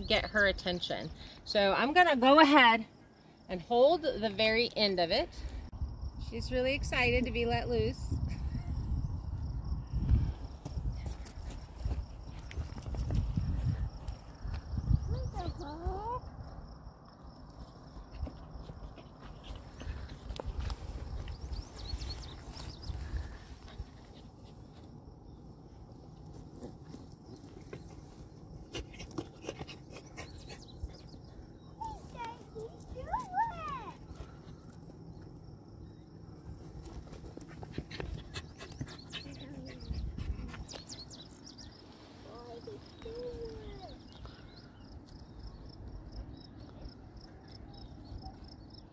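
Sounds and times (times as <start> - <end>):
wind rumbling on microphone: 5.3 - 17.0, 18.0 - 24.7, 36.4 - 41.7.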